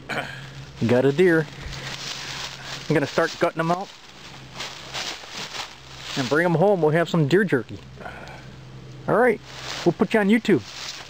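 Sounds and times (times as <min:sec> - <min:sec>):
leaves crunching underfoot: 0:00.4 - 0:07.9, 0:09.2 - 0:11.0.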